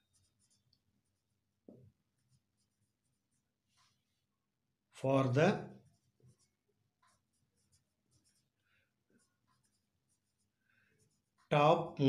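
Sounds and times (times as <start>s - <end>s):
marker pen scratching on paper: 0.0s - 4.3s, 5.7s - 11.6s.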